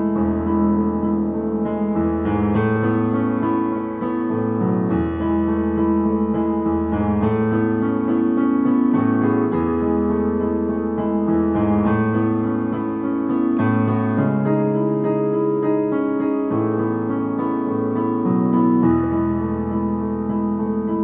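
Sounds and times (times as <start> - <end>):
electronic keyboard piano piece: 0.0 - 21.0.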